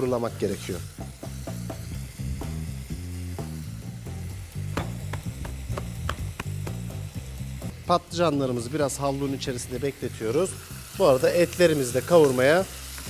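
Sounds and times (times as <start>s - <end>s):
background music with bass line: 0.0s - 12.8s
food sizzling in a pan: 0.0s - 13.0s.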